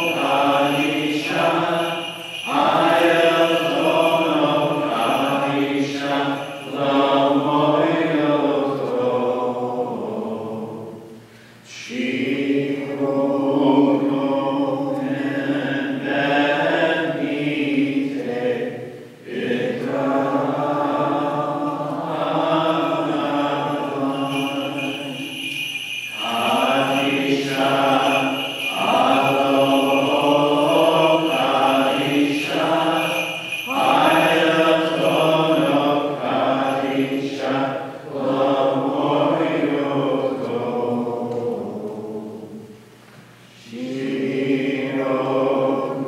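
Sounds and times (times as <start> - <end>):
liturgical chant: 0.0 - 46.0.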